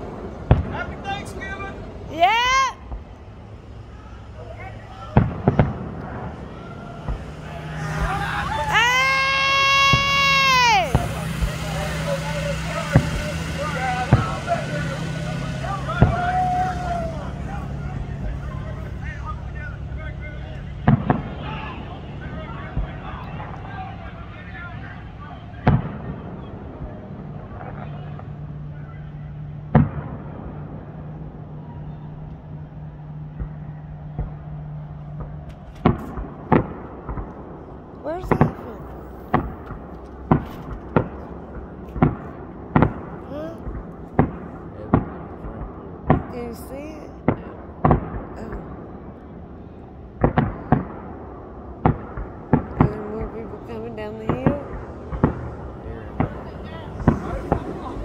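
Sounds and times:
fireworks bangs: 0.0 - 58.0.

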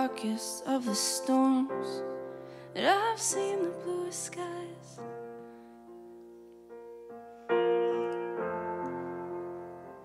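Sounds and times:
soft piano chords on keyboard: 0.0 - 10.0.

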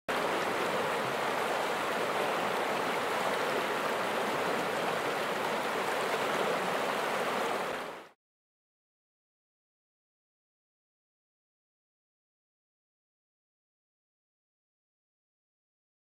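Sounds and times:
river water rushing: 0.1 - 8.2.

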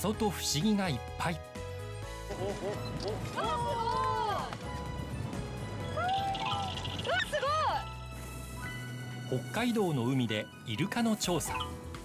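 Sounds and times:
background music: 0.0 - 12.0
people crying out in excitement: 5.9 - 6.8.

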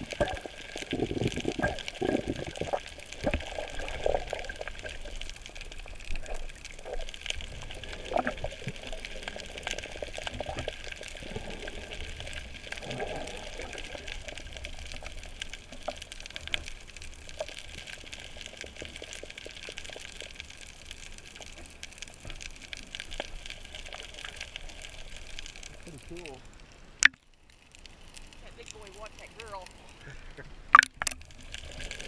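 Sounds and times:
bubbly gurgles: 0.0 - 26.4, 28.2 - 32.0
sharp clicks and crackles: 0.0 - 30.1, 30.7 - 32.0
underwater water wash: 0.0 - 32.0.

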